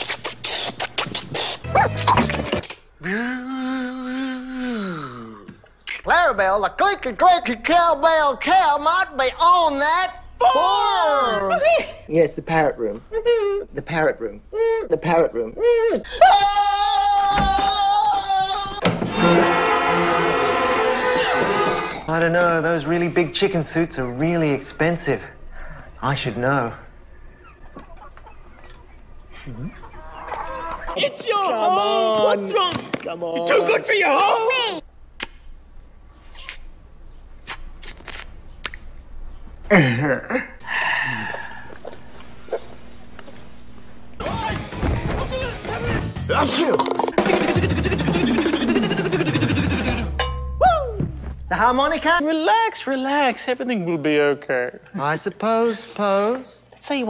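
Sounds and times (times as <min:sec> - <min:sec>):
beatbox clicks: 0:00.0 - 0:02.8
vocal noises: 0:00.0 - 0:06.1, 0:45.5 - 0:50.2
chicken clucking: 0:27.4 - 0:31.0.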